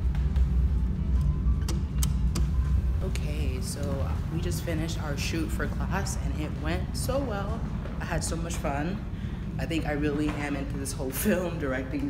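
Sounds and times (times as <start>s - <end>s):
low indoor rumble: 0.0s - 12.0s.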